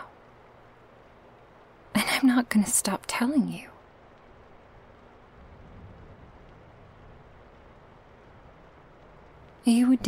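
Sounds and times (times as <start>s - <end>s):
microphone hiss: 0.0s - 10.0s
low rumble: 3.8s - 9.7s.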